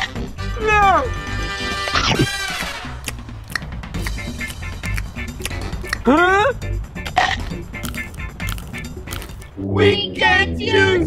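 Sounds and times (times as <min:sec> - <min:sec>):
background music with steady beat: 0:02.2 - 0:09.6
chocolate shell crunching: 0:03.0 - 0:06.1, 0:07.8 - 0:09.6.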